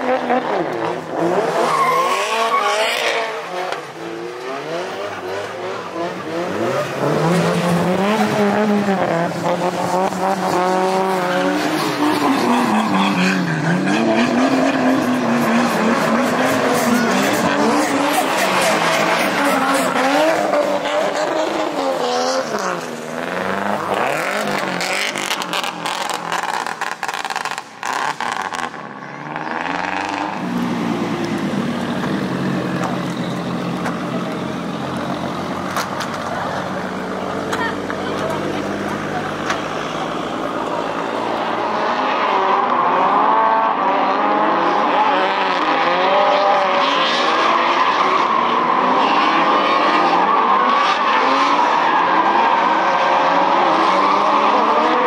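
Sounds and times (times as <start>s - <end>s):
car engines revving: 0.0s - 55.0s
tyres squealing and skidding: 0.0s - 55.0s.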